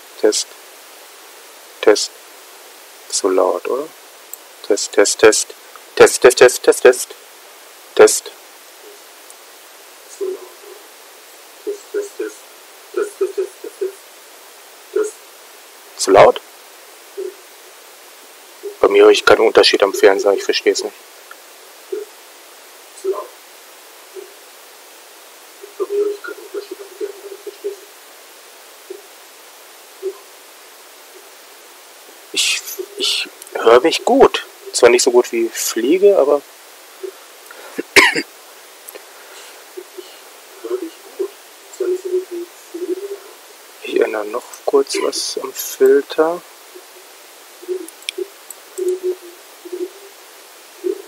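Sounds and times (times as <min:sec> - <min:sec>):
microphone hiss: 0:00.0 - 0:51.0
short voice-like bursts: 0:32.4 - 0:34.5, 0:43.8 - 0:46.4.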